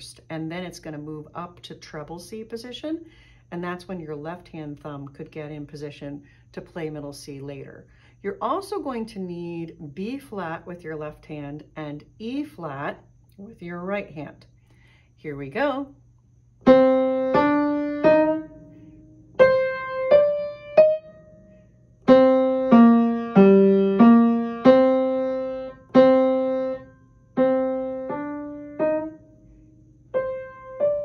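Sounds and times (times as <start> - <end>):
upright piano played slowly: 16.6 - 21.4, 22.0 - 29.4, 30.0 - 31.0.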